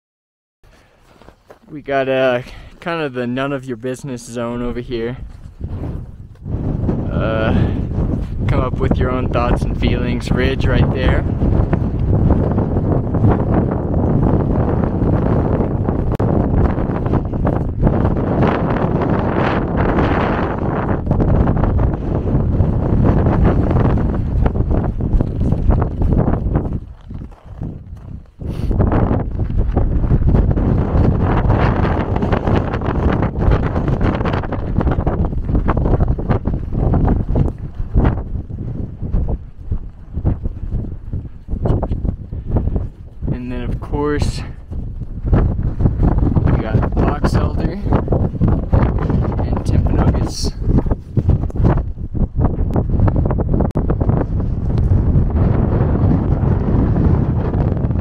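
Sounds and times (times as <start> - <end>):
wind buffeting microphone: 0.7 - 58.0.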